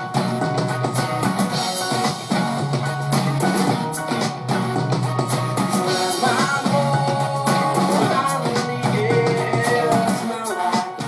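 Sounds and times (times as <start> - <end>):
drum beat: 0.0 - 11.0.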